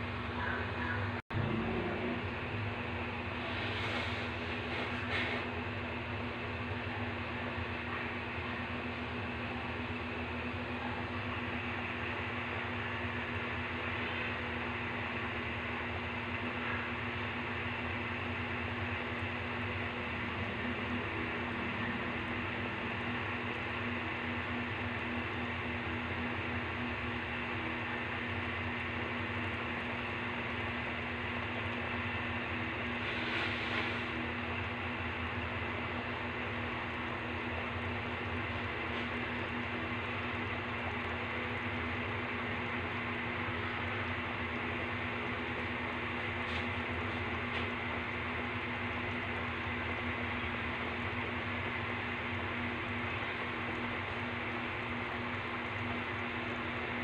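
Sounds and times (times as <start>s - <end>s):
soup boiling in a pot: 22.1s - 57.0s.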